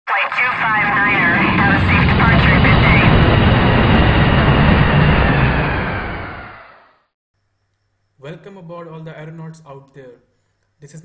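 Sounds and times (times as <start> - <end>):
jet engines roaring: 0.1 - 7.0.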